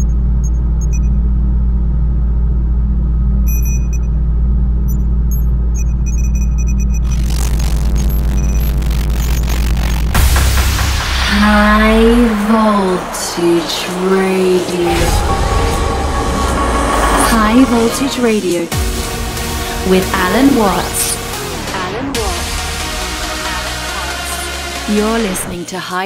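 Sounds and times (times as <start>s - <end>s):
deep rumbling drone: 0.0s - 25.5s
synthetic sound effects: 5.3s - 25.5s
electric crackles and zaps: 6.8s - 15.8s
processed voice announcing: 11.2s - 15.5s, 16.7s - 18.8s, 19.7s - 26.0s.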